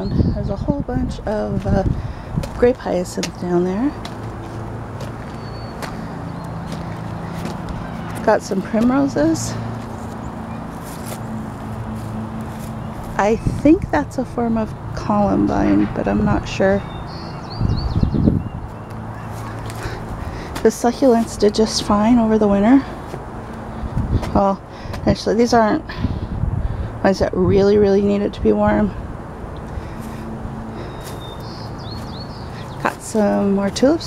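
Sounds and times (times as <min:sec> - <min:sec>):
low rumble on microphone: 0:00.0 - 0:04.6, 0:05.2 - 0:32.9
small bird chirping: 0:30.8 - 0:32.8.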